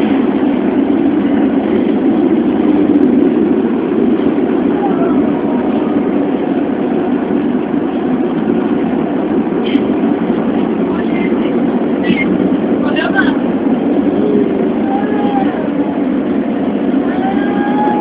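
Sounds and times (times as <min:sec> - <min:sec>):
train rumbling inside car: 0:00.0 - 0:18.0.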